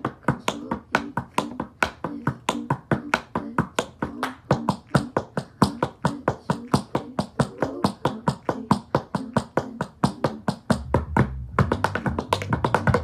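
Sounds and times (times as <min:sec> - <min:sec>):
tap shoes on wooden board: 0:00.0 - 0:13.0.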